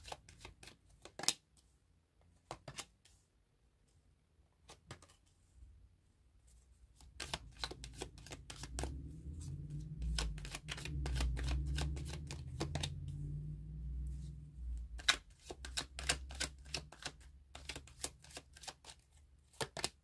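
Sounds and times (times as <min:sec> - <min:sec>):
cards shuffling clicks: 0:02.5 - 0:03.0, 0:07.0 - 0:08.9, 0:10.0 - 0:13.0, 0:14.8 - 0:20.0
low handling rumble: 0:07.6 - 0:15.1.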